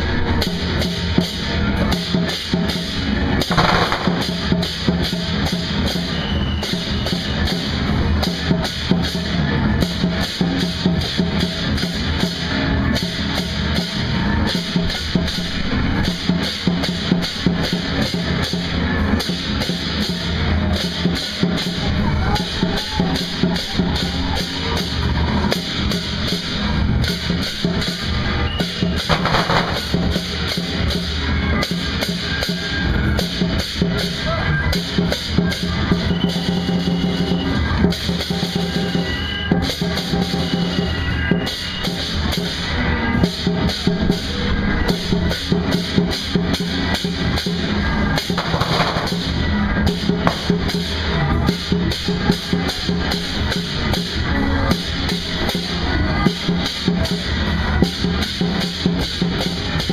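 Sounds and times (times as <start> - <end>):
drums and cymbals beaten fast: 0.0 - 59.9.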